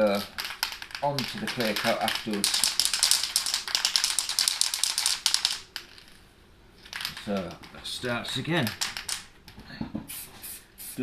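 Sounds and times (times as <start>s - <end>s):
spray can rattling when shaken: 0.1s - 6.2s, 6.8s - 7.8s, 8.6s - 9.3s.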